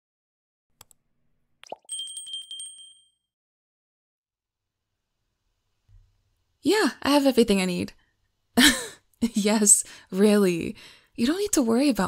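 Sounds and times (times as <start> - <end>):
click: 0.8 - 1.0
small high bell ringing: 1.8 - 3.3.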